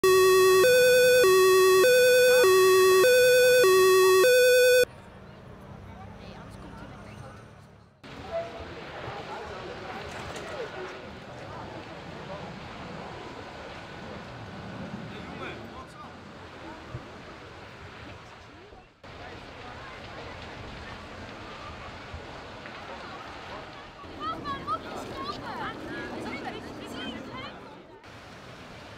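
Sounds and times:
two-tone emergency siren: 0.0 - 4.9
faint outdoor background noise: 0.0 - 28.9
large fire burning: 8.1 - 18.5, 19.1 - 25.9.

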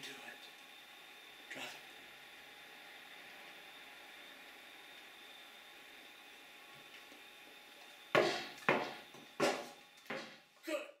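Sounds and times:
ball bouncing down wooden stairs: 8.2 - 10.3.

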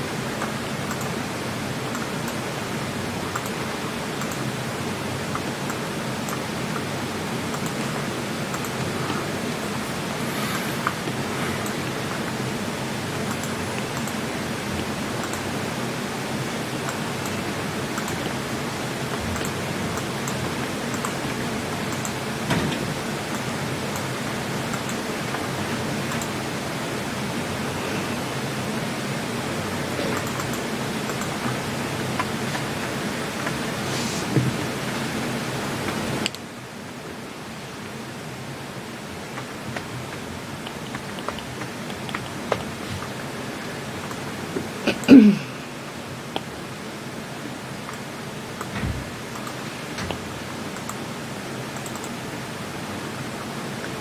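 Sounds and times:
microphone hiss: 0.0 - 54.0.

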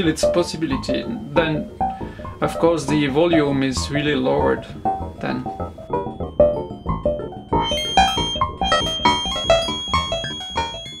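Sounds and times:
synthesizer plucked notes with echoes: 0.0 - 11.0
thin steady high whistle: 7.5 - 11.0.

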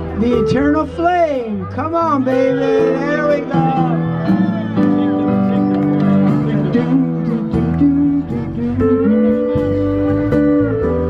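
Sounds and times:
steady bass line: 0.0 - 11.0.

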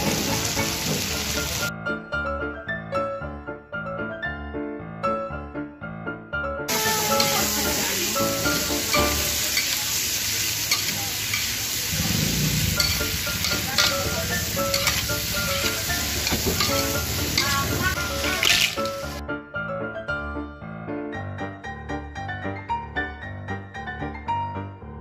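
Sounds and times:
shrimp sizzling in a wok: 0.0 - 1.7, 6.7 - 19.2
soft piano music: 0.0 - 25.0
metal tongs scraping pan: 6.9 - 9.9, 10.6 - 19.2.

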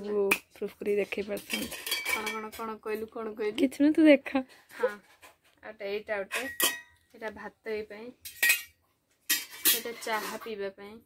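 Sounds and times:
metal utensils clinking and scraping: 0.0 - 3.6, 4.7 - 7.0, 8.2 - 10.7.

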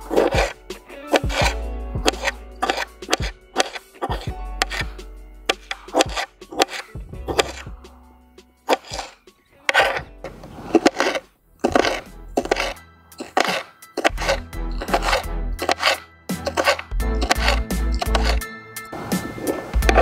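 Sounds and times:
background music: 0.0 - 20.0
knife chopping on cutting board: 0.1 - 4.9, 5.5 - 7.7, 8.7 - 10.0, 10.6 - 18.4.

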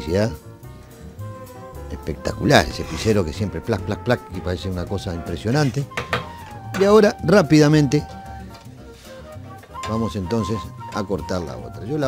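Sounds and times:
soft music with held tones: 0.0 - 12.0.

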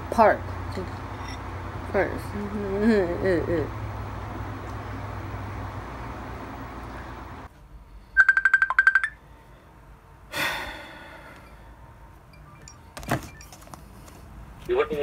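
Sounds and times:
phone ringtone beeps: 8.2 - 9.2, 12.3 - 13.6.

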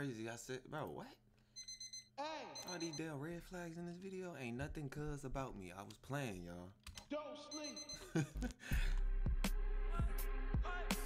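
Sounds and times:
rapid high electronic beeps: 1.6 - 3.1
man speaking: 2.2 - 7.8.

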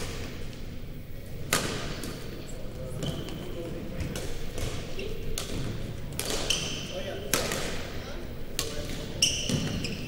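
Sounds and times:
low chatter: 1.0 - 10.0
racket hitting shuttlecock: 1.5 - 2.2, 4.2 - 6.7, 7.3 - 7.8.

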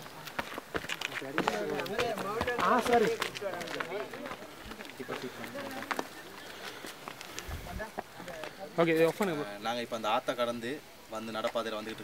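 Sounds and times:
footsteps on dirt and stone: 0.0 - 9.2.

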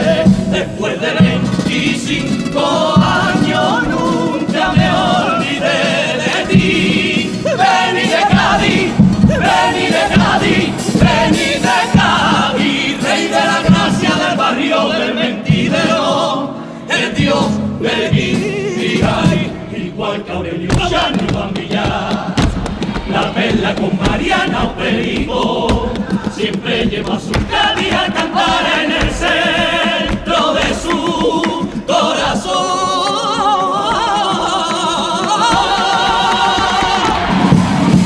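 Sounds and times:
drum beats: 0.0 - 16.4, 17.0 - 38.0
male choir singing: 0.0 - 38.0.

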